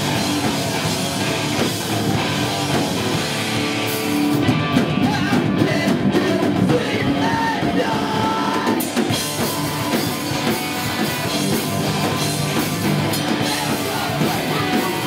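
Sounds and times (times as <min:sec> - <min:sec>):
live rock band playing: 0:00.0 - 0:15.0
shouted lead vocal: 0:04.6 - 0:15.0.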